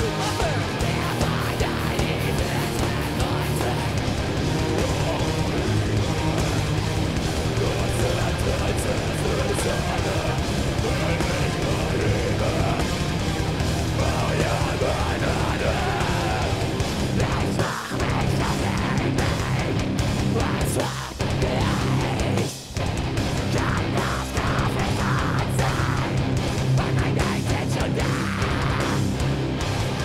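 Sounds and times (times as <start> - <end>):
bass: 0.0 - 30.0
distorted electric guitars: 0.0 - 30.0
drums: 0.0 - 30.0
vocals: 0.0 - 30.0.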